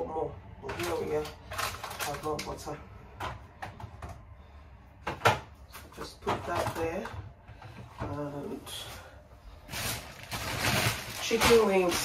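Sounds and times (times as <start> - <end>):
grocery packaging rustling: 0.0 - 2.8, 8.0 - 12.0.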